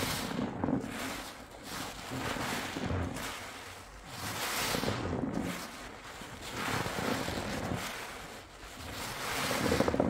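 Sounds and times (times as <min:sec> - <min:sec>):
sponge squelching in soapy water: 0:00.0 - 0:10.0.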